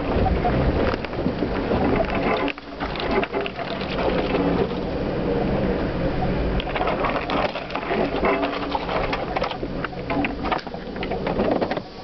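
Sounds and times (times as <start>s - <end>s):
low engine note: 0.0s - 12.0s
vehicle clattering and rattling: 0.0s - 12.0s.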